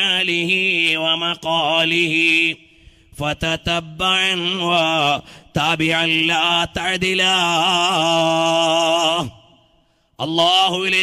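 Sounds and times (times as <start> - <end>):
man chanting melodically: 0.0 - 9.6, 10.2 - 11.0.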